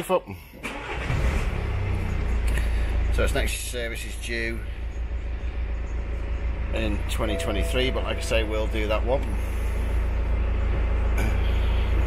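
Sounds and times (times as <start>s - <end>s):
diesel engine idling: 0.5s - 12.0s.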